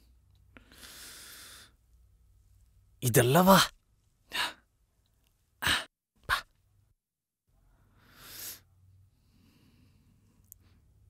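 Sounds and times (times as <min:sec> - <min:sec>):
man calling out: 0:03.0 - 0:03.7.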